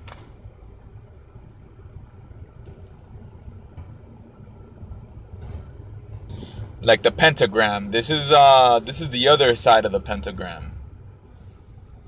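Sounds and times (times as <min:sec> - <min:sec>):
car engine idling: 0:00.6 - 0:12.0.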